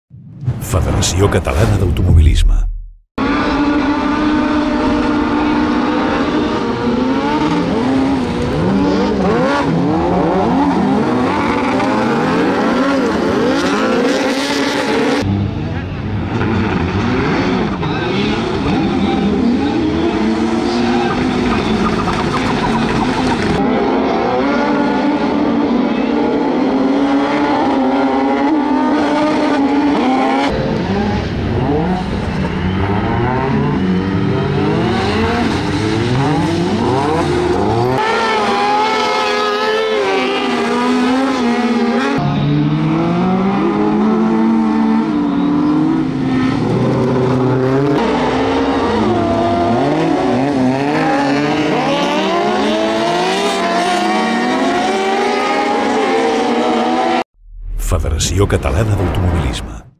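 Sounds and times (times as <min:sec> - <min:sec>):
race car engines revving: 0:03.2 - 0:57.2.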